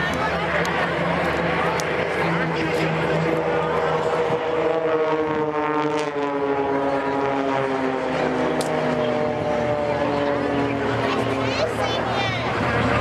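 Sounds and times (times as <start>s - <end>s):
propeller planes droning overhead: 0.0s - 13.0s.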